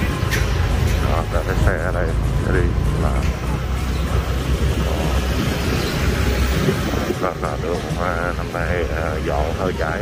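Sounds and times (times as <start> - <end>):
indistinct voices: 0.0 - 10.0
low traffic rumble: 0.0 - 10.0.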